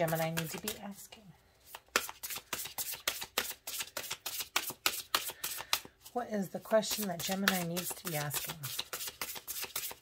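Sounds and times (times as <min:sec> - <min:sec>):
cards being shuffled: 0:00.0 - 0:00.9, 0:01.6 - 0:06.2, 0:06.9 - 0:10.0.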